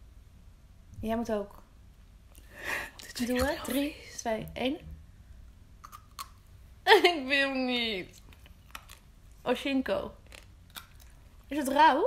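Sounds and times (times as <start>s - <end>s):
woman's voice: 3.0s - 4.9s, 6.9s - 8.2s, 9.5s - 10.2s, 11.5s - 12.0s
biting and chewing: 8.2s - 9.1s, 10.2s - 11.5s.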